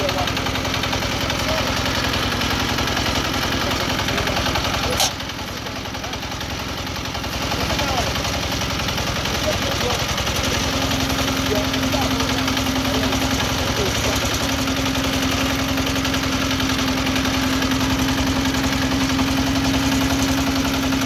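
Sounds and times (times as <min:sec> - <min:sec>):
combine harvester engine running: 0:00.0 - 0:21.0.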